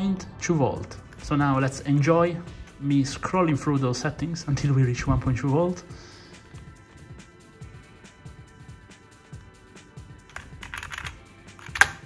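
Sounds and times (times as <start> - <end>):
quiet background music: 0.0 - 12.0
keyboard keys clicking: 10.3 - 12.0.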